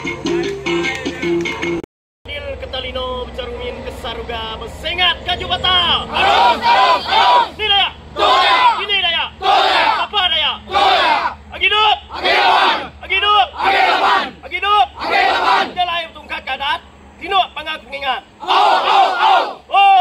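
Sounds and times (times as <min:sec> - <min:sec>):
group of men shouting a cry: 0:06.1 - 0:15.8, 0:18.4 - 0:20.0.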